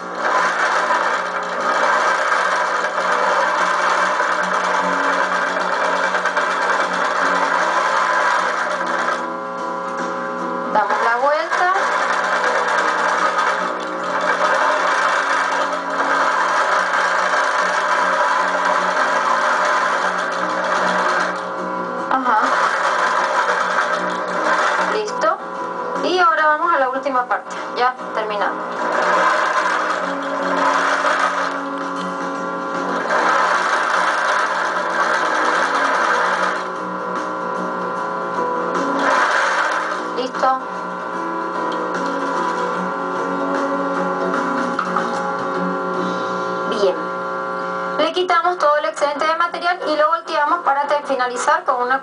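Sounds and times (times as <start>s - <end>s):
sewing machine stitching: 0.0s - 9.3s, 10.8s - 25.4s, 27.4s - 36.8s, 38.8s - 40.7s, 41.7s - 42.8s.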